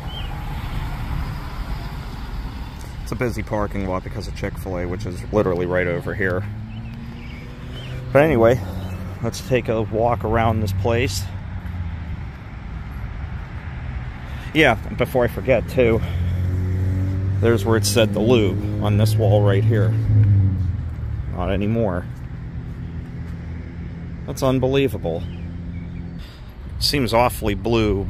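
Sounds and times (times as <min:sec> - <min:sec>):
car driving by: 0:00.0 - 0:24.3
road traffic rumble: 0:00.0 - 0:28.0.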